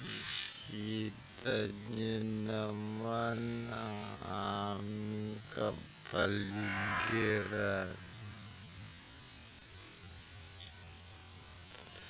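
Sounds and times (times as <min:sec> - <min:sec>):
low male voice drawn-out syllables: 0:00.7 - 0:08.2.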